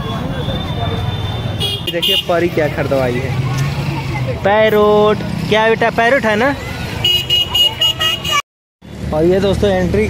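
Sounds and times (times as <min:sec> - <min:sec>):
crowd noise: 0:00.0 - 0:08.4.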